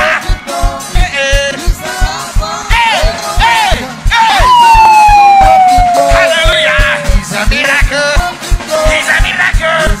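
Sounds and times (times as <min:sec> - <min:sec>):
man singing into a microphone: 0:00.0 - 0:04.4, 0:05.6 - 0:10.0
fast drum beat: 0:00.0 - 0:10.0
live gospel praise music: 0:00.0 - 0:10.0.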